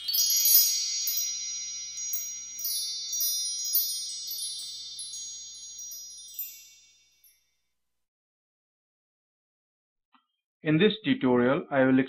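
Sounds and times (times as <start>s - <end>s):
high bright chime tones: 0.0s - 7.6s.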